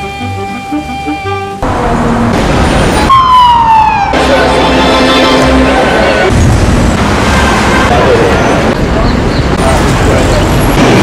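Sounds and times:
city street traffic: 0:00.0 - 0:11.0
people's voices: 0:07.9 - 0:10.7.

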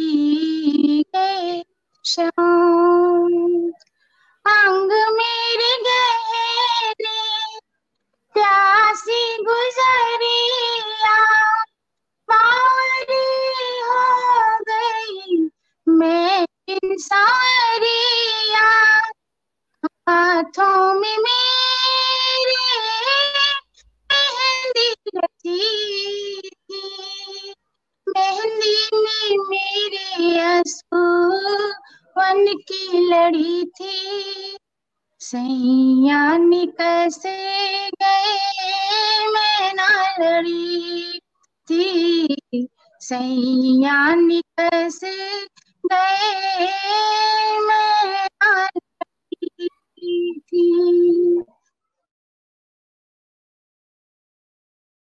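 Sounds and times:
woman singing unaccompanied: 0:00.0 - 0:03.8, 0:04.4 - 0:07.6, 0:08.3 - 0:19.2, 0:19.8 - 0:34.6, 0:35.2 - 0:51.5.

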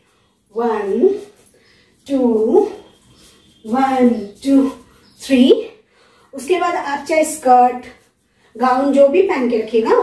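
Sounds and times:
woman counting aloud: 0:00.5 - 0:01.3, 0:02.1 - 0:02.8, 0:03.6 - 0:05.8.

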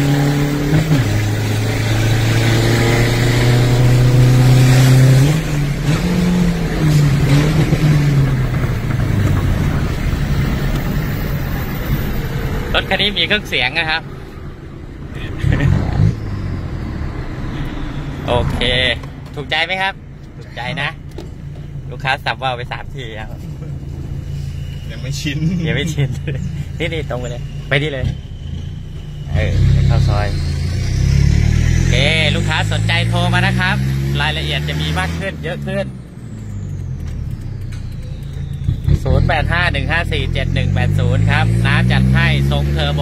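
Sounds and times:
diesel engine under load: 0:00.0 - 0:43.0
road noise: 0:00.0 - 0:43.0
faint high whistle: 0:24.1 - 0:25.7, 0:26.4 - 0:30.9, 0:36.2 - 0:39.8.

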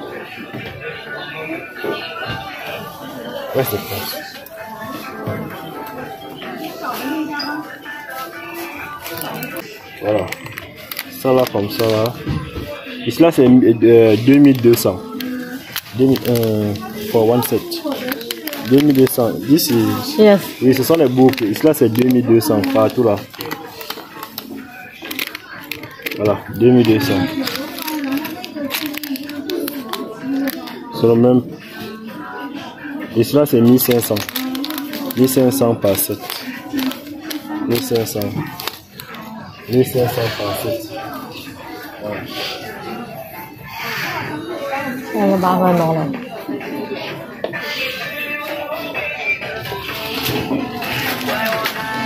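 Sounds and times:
background music: 0:00.0 - 0:52.0
faint voices: 0:00.0 - 0:52.0
plastic packs clicking and rustling: 0:09.0 - 0:12.5, 0:13.1 - 0:31.2, 0:33.2 - 0:40.8, 0:49.7 - 0:52.0.

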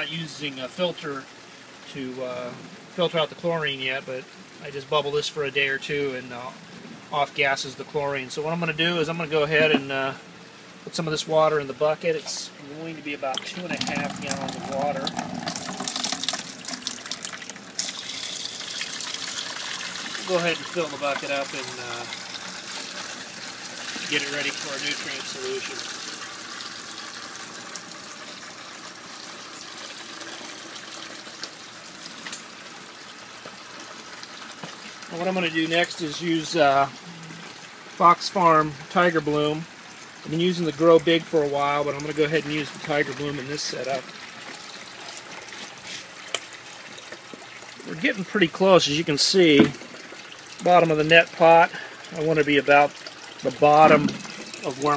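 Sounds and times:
water pouring into plastic bucket: 0:13.3 - 0:39.0, 0:39.8 - 0:54.9.

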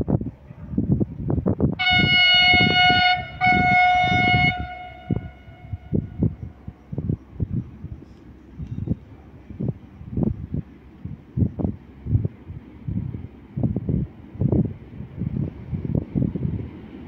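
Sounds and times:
wind buffeting microphone: 0:00.0 - 0:17.0
locomotive horn blasts: 0:01.8 - 0:06.6.

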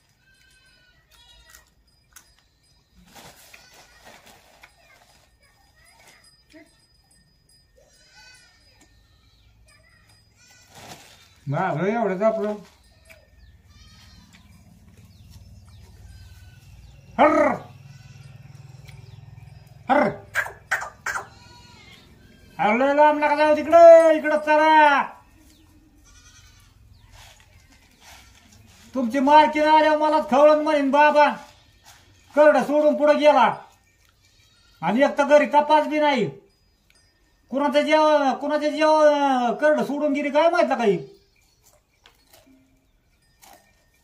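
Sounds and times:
goat bleating: 0:13.0 - 0:19.2, 0:20.0 - 0:27.0, 0:34.1 - 0:35.1.

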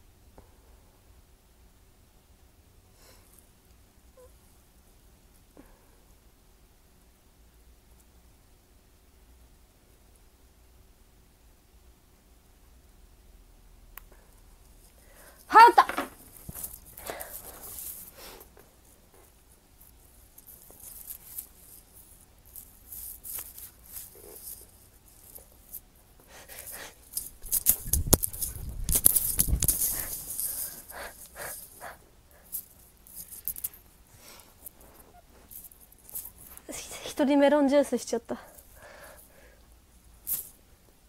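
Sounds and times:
handling noise rustling: 0:14.8 - 0:36.7.

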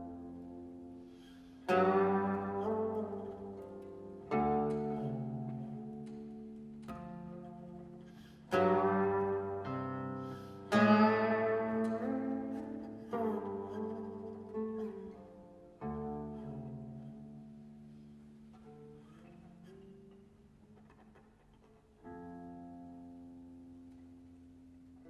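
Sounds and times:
plucked zither notes: 0:00.0 - 0:20.8.

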